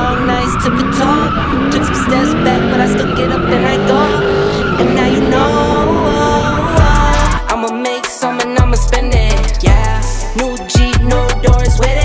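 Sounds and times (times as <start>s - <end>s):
tyres squealing: 0.0s - 7.4s
car engine revving: 0.0s - 7.5s.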